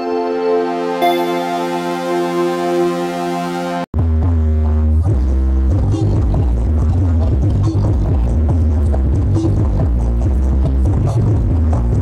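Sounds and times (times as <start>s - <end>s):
electronic dance music: 0.0s - 3.9s.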